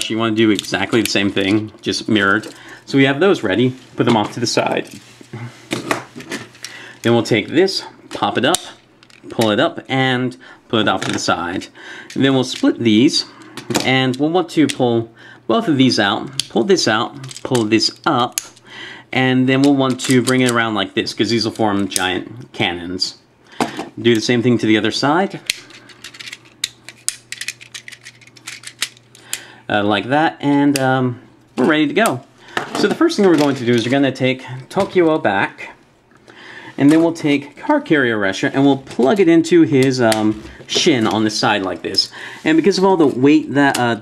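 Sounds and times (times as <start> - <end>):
plastic toy parts clicking: 25.4 - 29.0.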